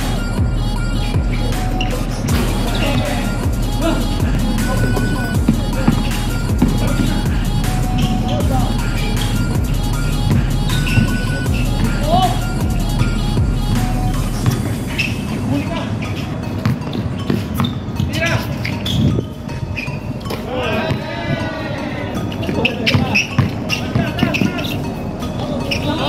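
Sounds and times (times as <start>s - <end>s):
music with low bass line: 0.0s - 26.0s
people shouting: 1.7s - 9.7s, 10.3s - 12.6s, 20.3s - 24.7s.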